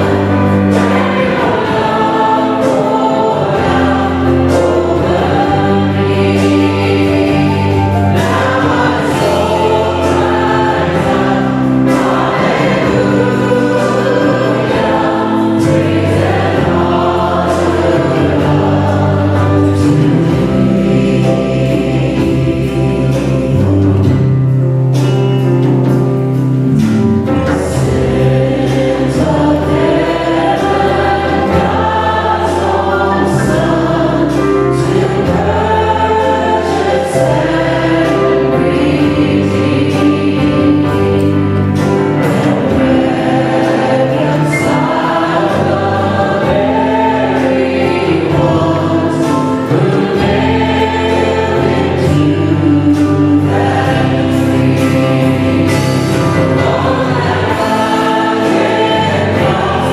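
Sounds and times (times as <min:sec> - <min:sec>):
choir singing: 0:00.0 - 0:59.9
drums: 0:00.0 - 0:59.9
guitars: 0:00.0 - 0:59.9
piano: 0:00.0 - 0:59.9.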